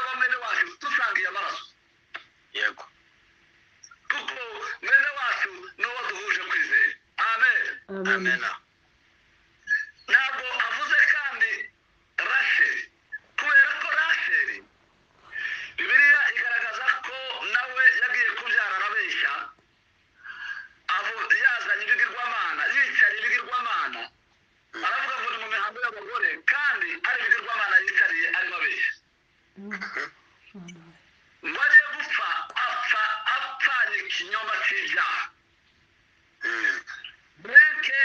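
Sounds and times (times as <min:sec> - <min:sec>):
man speaking over call line: 0:04.1 - 0:08.6, 0:10.1 - 0:14.7, 0:15.3 - 0:19.6, 0:20.9 - 0:24.2, 0:24.8 - 0:29.0, 0:31.4 - 0:35.4, 0:36.4 - 0:38.0
person talking: 0:07.5 - 0:08.6, 0:29.6 - 0:31.1.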